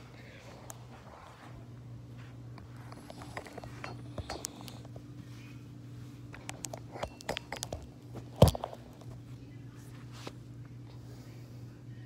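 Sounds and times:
steady low hum: 0.0s - 12.0s
light clicks and clinks: 6.4s - 7.9s.

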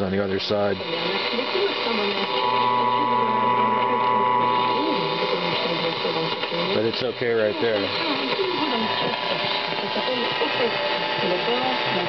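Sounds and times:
faint radio voices: 0.0s - 12.0s
radio static hiss: 0.0s - 12.0s
radio whistle and hum: 0.6s - 12.0s.

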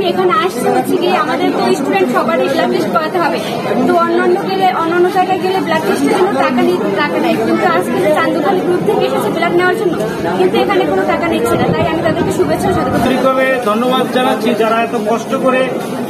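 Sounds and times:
voices chattering: 0.0s - 16.0s.

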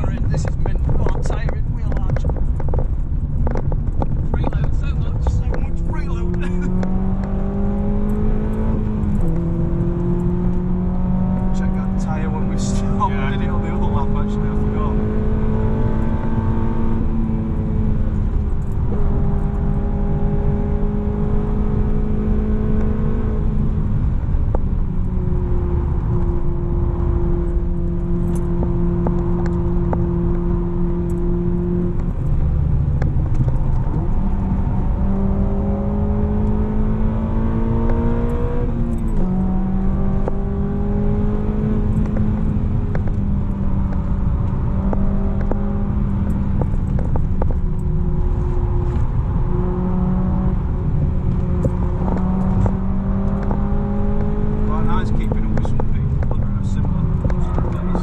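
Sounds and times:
car engine at high revs: 0.0s - 58.0s
road and tyre rumble: 0.0s - 58.0s.

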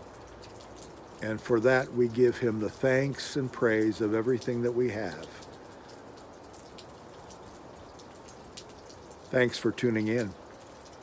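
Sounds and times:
faint steady hiss: 0.0s - 11.0s
light irregular ticks: 0.0s - 11.0s.

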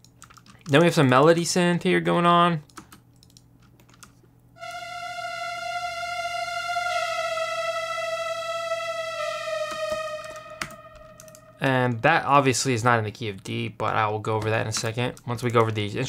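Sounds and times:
synthesizer lead melody: 4.6s - 12.0s.

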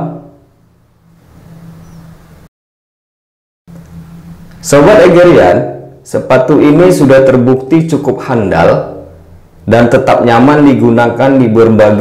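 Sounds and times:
low steady hum: 3.7s - 12.0s.

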